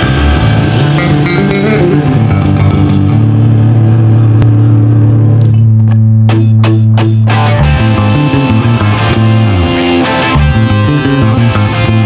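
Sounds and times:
electric bass: 0:00.0 - 0:12.0
electric guitar: 0:00.0 - 0:12.0.

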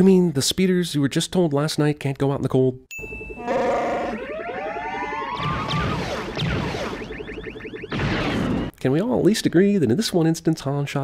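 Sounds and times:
warbling electronic chirps: 0:03.0 - 0:08.8
creature yell rising in pitch: 0:03.4 - 0:05.4.

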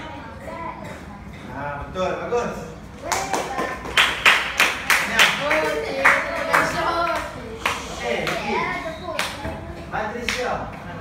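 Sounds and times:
children's voices: 0:00.0 - 0:01.3, 0:05.6 - 0:09.9
rhythmic hand clapping: 0:03.0 - 0:08.5.

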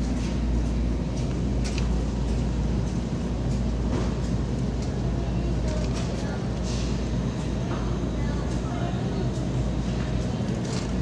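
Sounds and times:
low rumble of supermarket: 0:00.0 - 0:11.0.

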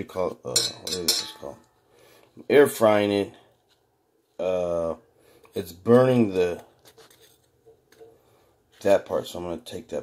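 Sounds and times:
person speaking: 0:00.0 - 0:01.8, 0:02.4 - 0:06.9, 0:08.7 - 0:10.0.

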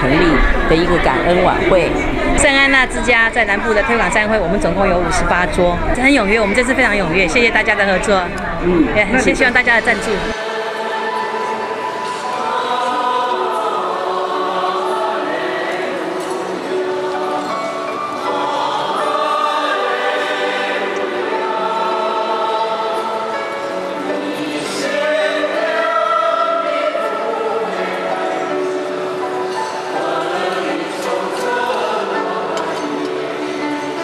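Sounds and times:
choir singing sustained notes: 0:00.0 - 0:34.0.

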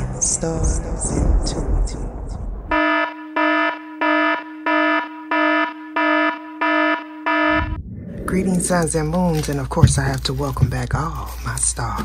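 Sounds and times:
low rumbling sound: 0:00.0 - 0:02.7, 0:07.5 - 0:10.2
buzzy electronic alarm beeps: 0:02.7 - 0:07.9.

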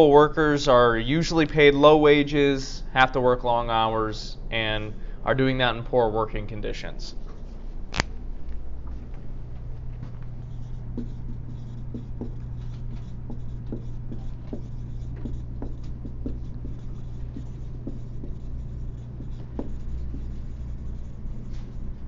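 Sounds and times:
low hum: 0:04.2 - 0:22.0
pen scratching while writing: 0:10.4 - 0:22.0.

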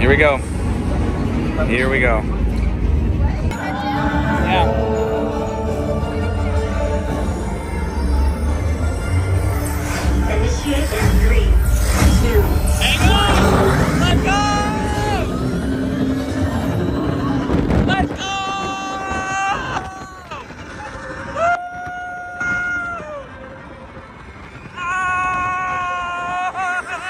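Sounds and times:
roller coaster rumble: 0:00.0 - 0:27.0
riders screaming: 0:17.0 - 0:23.4, 0:24.6 - 0:27.0.

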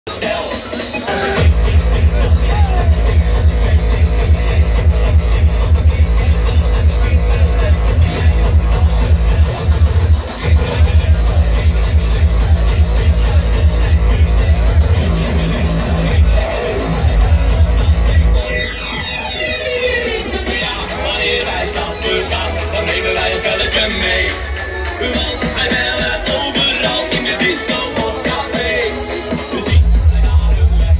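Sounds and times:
hardcore music over sound system: 0:00.0 - 0:30.9
fast heavy kick drum: 0:01.4 - 0:18.4, 0:29.7 - 0:30.9.

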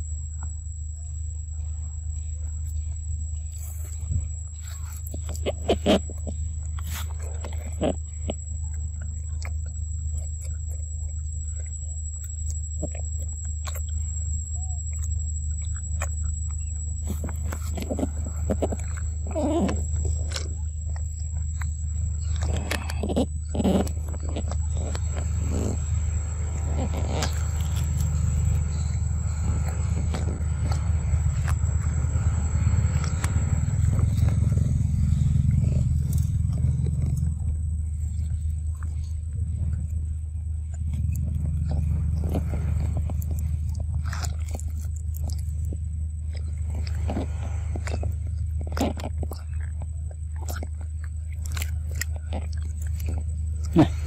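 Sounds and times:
low rumble: 0:00.0 - 0:54.0
monkey sucking juice from carton: 0:22.2 - 0:36.0.

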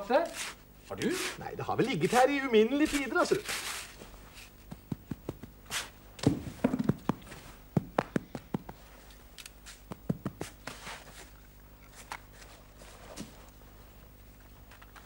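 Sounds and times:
hands digging in sand: 0:02.9 - 0:04.6.

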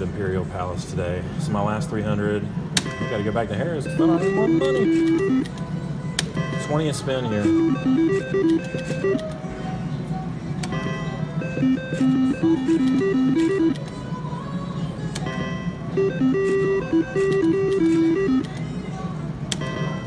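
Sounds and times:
background music: 0:00.0 - 0:20.0
casino background noise: 0:00.0 - 0:20.0
slot machine electronic tune: 0:02.8 - 0:05.6, 0:06.3 - 0:09.3, 0:10.6 - 0:13.9, 0:15.2 - 0:18.6, 0:19.6 - 0:20.0.

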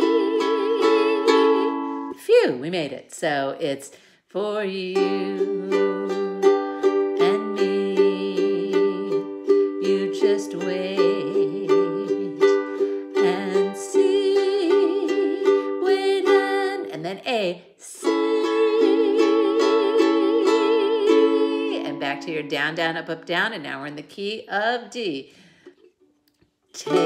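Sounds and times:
ukulele strumming chords: 0:00.0 - 0:02.2, 0:04.6 - 0:17.1, 0:18.0 - 0:23.1, 0:25.7 - 0:27.0.

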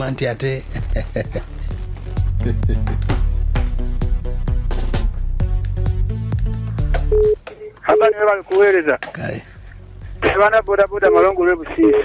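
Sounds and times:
music with deep bass and beat: 0:00.7 - 0:07.1
short beeping tones: 0:07.1 - 0:08.0
man's voice: 0:10.2 - 0:12.0.

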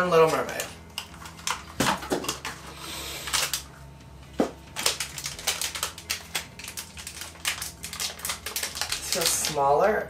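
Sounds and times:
packaging crinkling: 0:00.0 - 0:03.7, 0:04.7 - 0:09.6
packaging snapping open: 0:00.3 - 0:02.6, 0:03.2 - 0:03.7, 0:04.8 - 0:09.6.

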